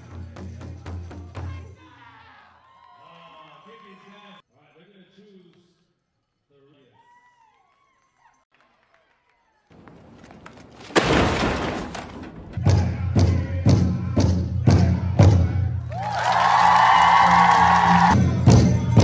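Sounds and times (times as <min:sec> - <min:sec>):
large drum beating: 0:12.3 - 0:15.7
men singing low: 0:12.6 - 0:15.8.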